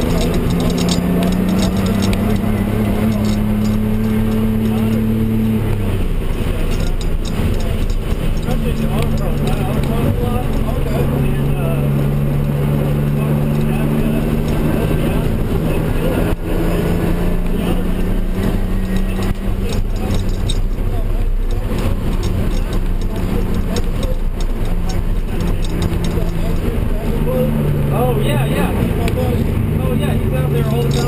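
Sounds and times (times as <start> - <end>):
car engine droning inside cabin: 0.0 - 31.0.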